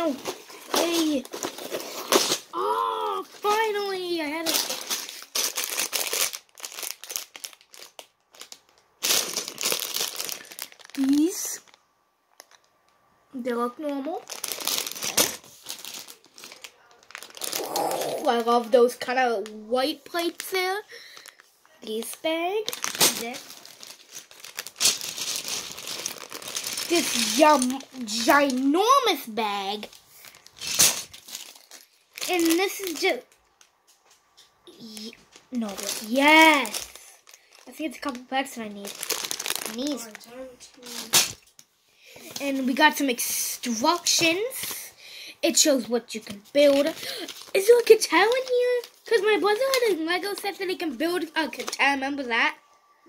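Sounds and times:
plastic bag crackling: 0.0s - 12.7s, 13.8s - 33.9s, 34.6s - 41.6s, 42.2s - 44.9s, 45.5s - 52.3s.

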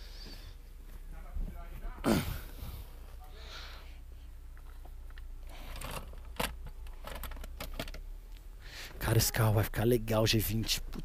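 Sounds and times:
small clicks and knocks: 4.5s - 8.4s.

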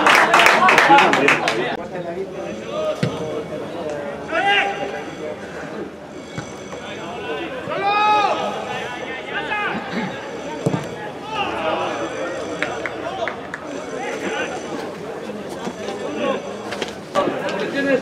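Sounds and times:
footballers shouting: 11.0s - 13.4s.

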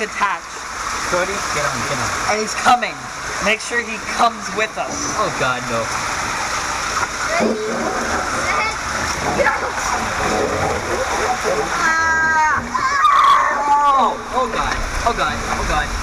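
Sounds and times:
water rushing in a waterslide: 0.0s - 16.0s.

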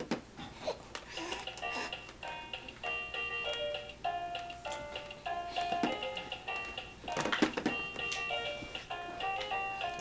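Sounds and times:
electronic toy melody: 1.4s - 10.0s.

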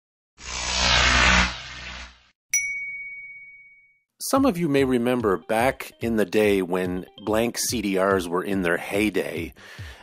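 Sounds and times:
bright bell-like ding: 2.6s - 4.0s.

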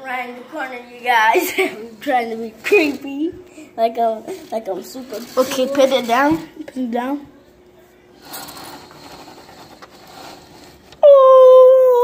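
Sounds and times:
phone scraping window blinds: 4.3s - 6.4s, 8.2s - 11.0s.

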